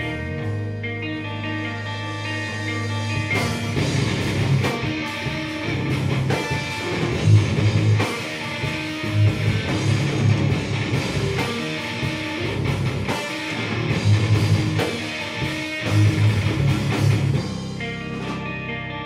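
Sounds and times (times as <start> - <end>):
metal band playing live: 0.0 - 19.0.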